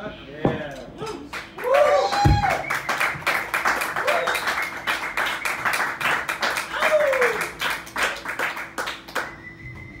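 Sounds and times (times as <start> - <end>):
audience clapping: 1.3 - 9.4.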